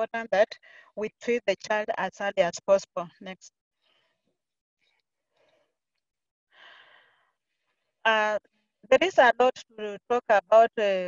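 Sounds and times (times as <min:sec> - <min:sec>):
breath into microphone: 0:06.5 - 0:07.8.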